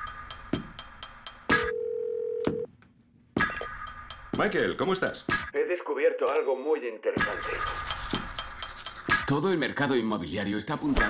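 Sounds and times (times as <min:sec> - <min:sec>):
telephone dial tone: 0:01.7 - 0:02.7.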